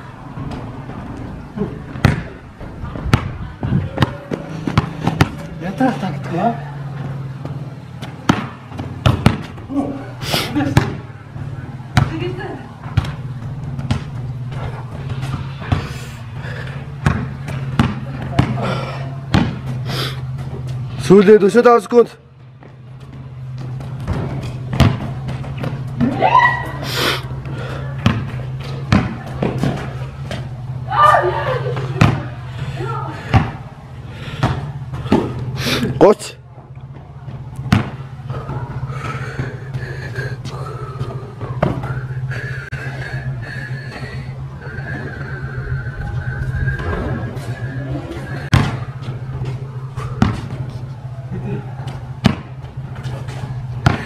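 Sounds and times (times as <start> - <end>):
basketball bouncing on asphalt: 0.0 - 21.0, 22.3 - 31.0, 31.6 - 35.6, 36.4 - 43.0, 48.3 - 54.0
steady low hum: 0.0 - 54.0.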